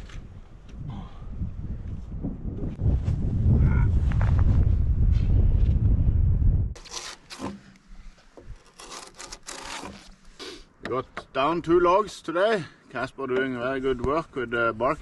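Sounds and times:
knife scraping bark off log: 0:06.8 - 0:10.7.

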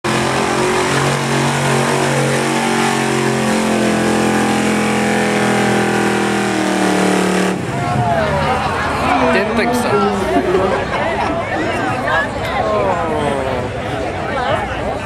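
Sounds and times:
truck engine at high revs: 0:00.0 - 0:09.8.

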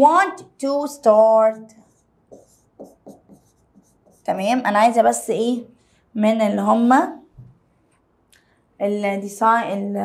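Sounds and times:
pen strokes on touchscreen: 0:01.7 - 0:04.5.

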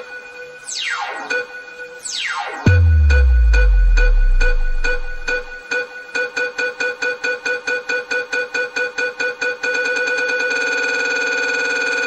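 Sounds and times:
stuttering electronic beep tone: 0:00.7 - 0:05.6
sped-up funk music: 0:02.7 - 0:05.6.

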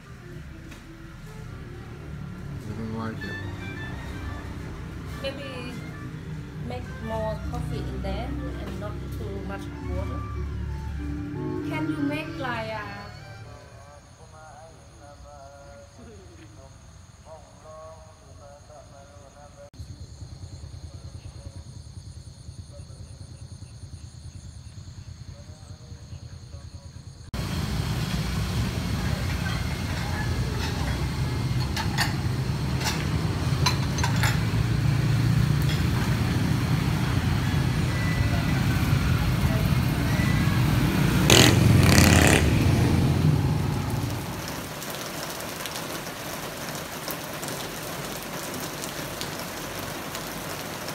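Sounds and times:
scooters and cars passing: 0:00.0 - 0:13.3, 0:27.4 - 0:45.0
insects calling: 0:11.4 - 0:50.9
steady hiss of rain: 0:27.3 - 0:50.9.

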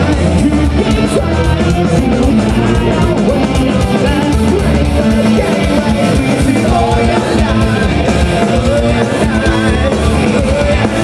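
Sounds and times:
bass guitar: 0:00.0 - 0:11.0
distorted electric guitars: 0:00.0 - 0:11.0
man singing: 0:00.0 - 0:11.0
pounding drums: 0:00.0 - 0:11.0.

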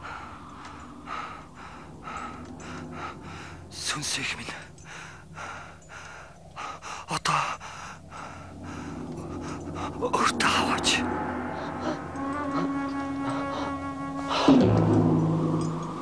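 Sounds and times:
man gasping for breath: 0:04.5 - 0:10.0.

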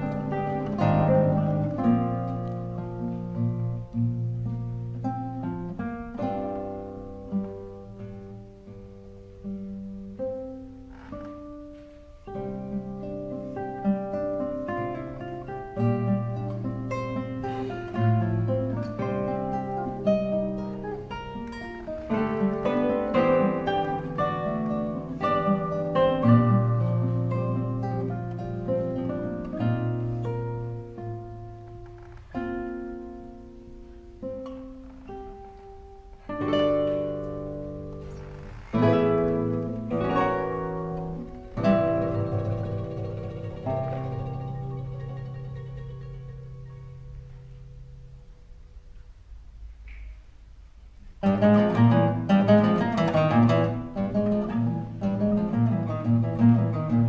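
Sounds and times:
classical guitars playing: 0:00.0 - 0:57.0.

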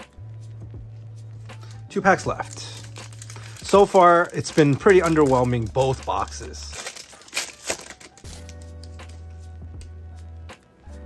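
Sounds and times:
quiet background music: 0:00.0 - 0:11.0
foil wrapper crinkling: 0:01.6 - 0:09.4.

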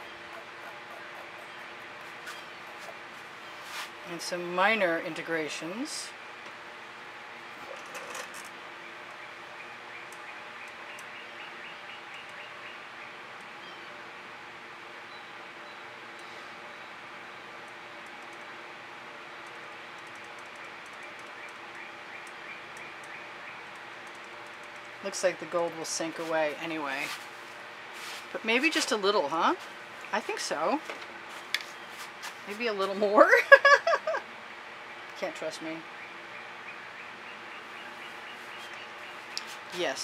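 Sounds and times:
bird chirping: 0:00.0 - 0:03.8, 0:08.8 - 0:14.0, 0:35.8 - 0:40.0
background hum and hiss: 0:00.0 - 0:40.0.

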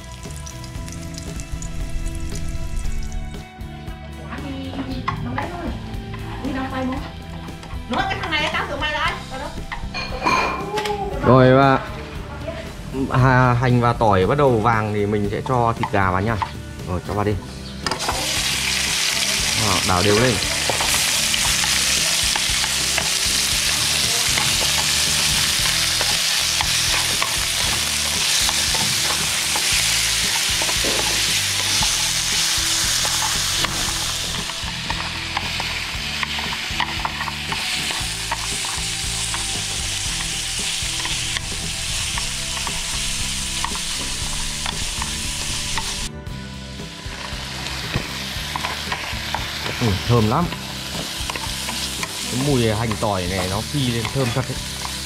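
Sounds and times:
chicken sizzling in oil: 0:00.0 - 0:03.4, 0:17.1 - 0:55.0
chopsticks scraping a pan: 0:18.7 - 0:46.1, 0:47.1 - 0:55.0.

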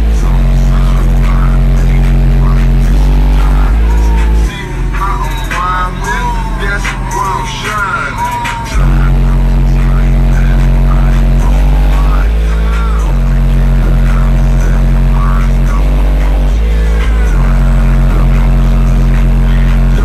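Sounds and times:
loud sustained bass tones: 0:00.0 - 0:20.0.

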